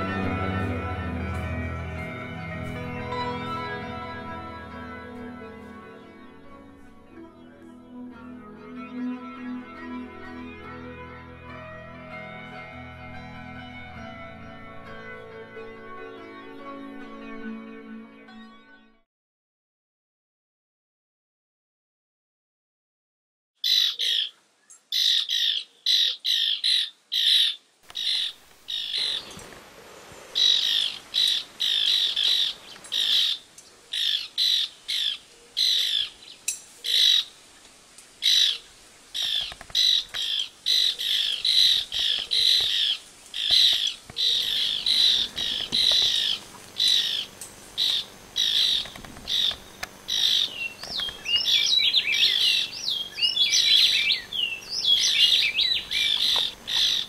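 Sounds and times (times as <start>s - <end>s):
bird calling in harsh notes: 30.4s - 37.4s, 38.2s - 57.0s.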